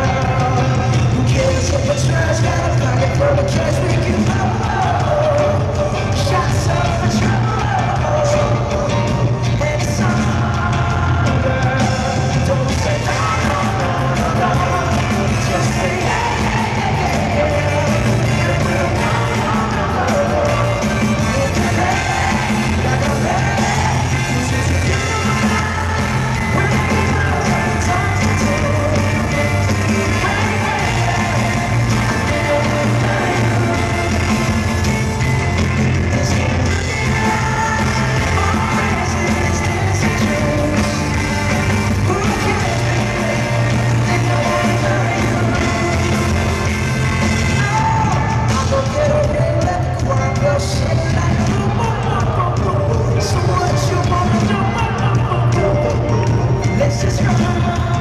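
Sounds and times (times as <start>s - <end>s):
horn section: 0.0s - 58.0s
lead voice singing: 0.0s - 58.0s
live pop-soul band playing: 0.0s - 58.0s.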